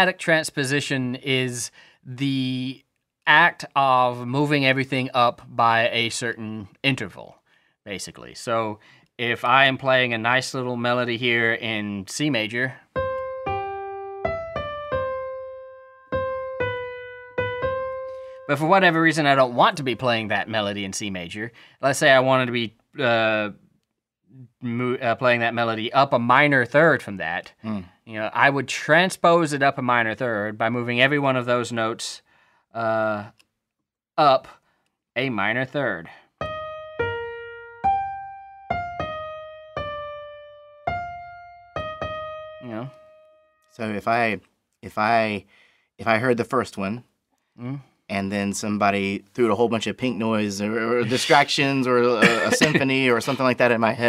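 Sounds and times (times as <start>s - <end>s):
simple piano melody: 12.9s - 20.3s, 36.4s - 43.8s.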